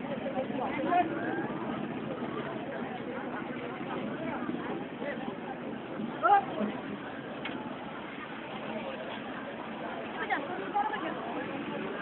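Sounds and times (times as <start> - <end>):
many voices talking: 0.0 - 12.0
steady background noise: 0.0 - 12.0.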